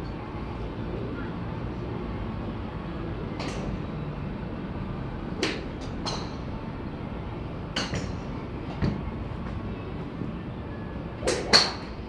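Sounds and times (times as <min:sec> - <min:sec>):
golf club striking ball: 0:07.8 - 0:08.2.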